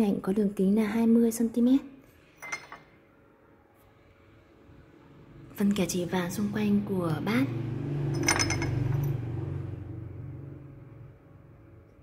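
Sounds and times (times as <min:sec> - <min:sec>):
porcelain tableware clink: 0:02.4 - 0:03.0, 0:08.2 - 0:09.1.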